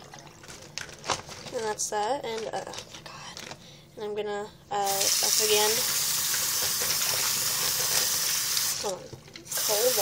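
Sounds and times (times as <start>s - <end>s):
tap water running into sink: 4.9s - 10.0s.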